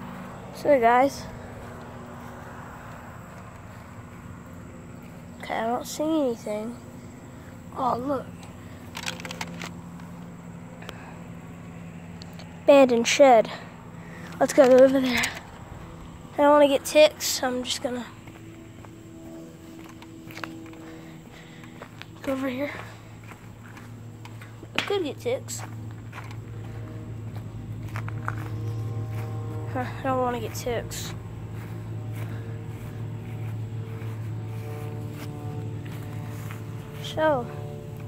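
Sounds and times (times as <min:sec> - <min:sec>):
faint hum: 0:00.0 - 0:38.0
footsteps on concrete: 0:18.1 - 0:38.0.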